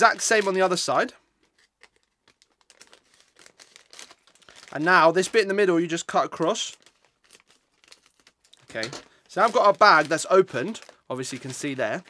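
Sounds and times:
scissors snipping plastic bag: 0:07.3 - 0:11.8.

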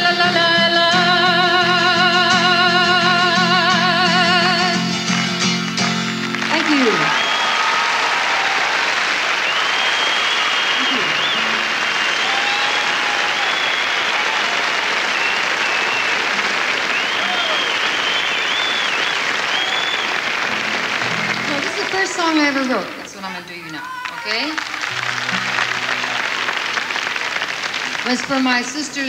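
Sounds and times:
audience applauding: 0:03.8 - 0:29.0
high whistles: 0:06.9 - 0:20.6.

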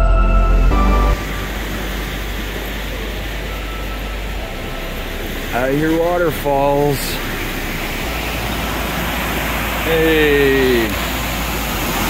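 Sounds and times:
waterfall and river rushing: 0:00.4 - 0:12.0.

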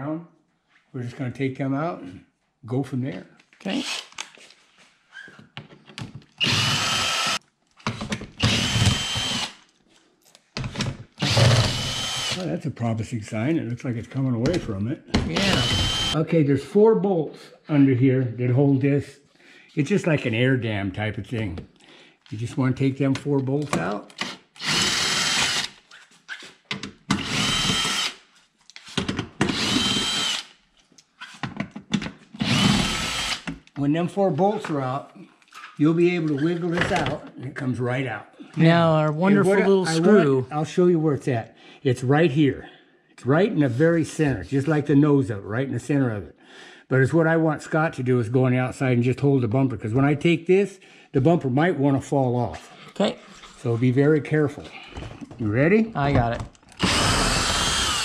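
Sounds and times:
cordless drill whining: 0:03.8 - 0:04.2, 0:06.4 - 0:07.4, 0:08.4 - 0:09.6, 0:11.2 - 0:12.5, 0:15.3 - 0:16.2, 0:24.2 - 0:25.8, 0:27.1 - 0:28.2, 0:29.4 - 0:30.6, 0:32.4 - 0:33.5, 0:56.7 - 0:58.0.

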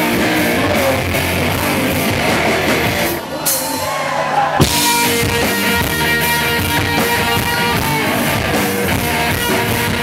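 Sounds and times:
live rock band playing loud: 0:00.0 - 0:10.0.

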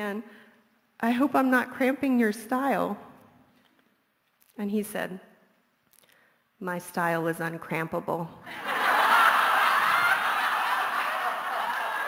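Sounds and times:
audience laughing: 0:08.5 - 0:12.0.

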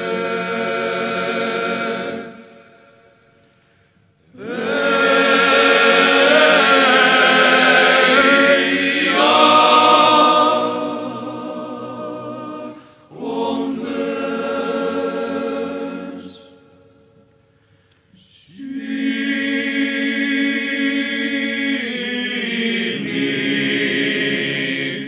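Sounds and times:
male ensemble singing chords: 0:00.0 - 0:03.4, 0:04.3 - 0:16.8, 0:18.2 - 0:25.0.

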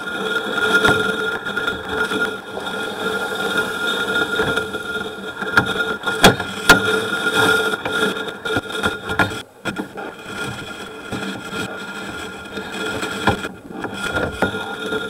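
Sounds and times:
machine hum: 0:00.0 - 0:15.0.

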